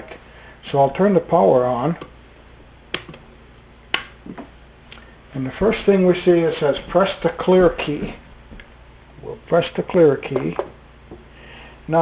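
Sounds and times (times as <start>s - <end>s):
power switch clicks: 2.9s - 3.2s, 3.9s - 4.2s.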